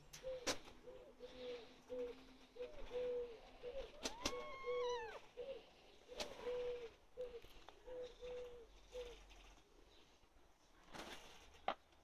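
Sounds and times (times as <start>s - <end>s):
pigeon cooing: 0.0s - 9.6s
cat meowing: 4.0s - 5.3s.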